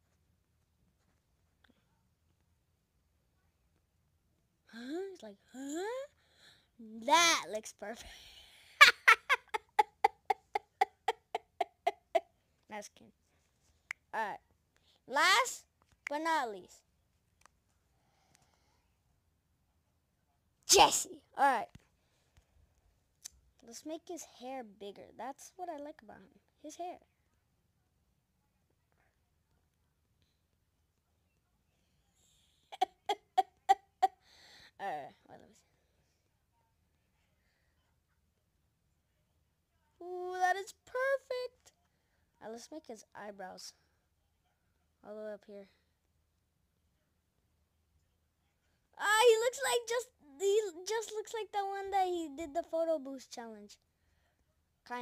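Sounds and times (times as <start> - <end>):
boy giggling: 8.7 - 12.2, 32.7 - 34.2
child laughing: 8.7 - 12.2, 32.7 - 34.2.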